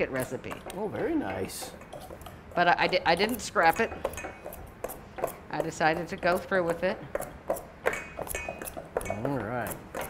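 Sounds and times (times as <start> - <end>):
metal utensils scraping in bowls: 0.0 - 4.7, 7.5 - 10.0.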